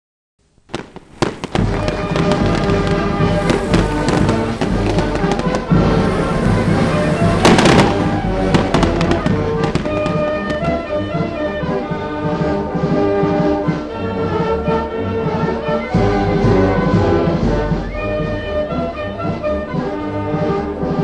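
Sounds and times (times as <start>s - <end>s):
fireworks bangs and crackles: 0.7s - 11.1s
music playing: 1.2s - 12.9s.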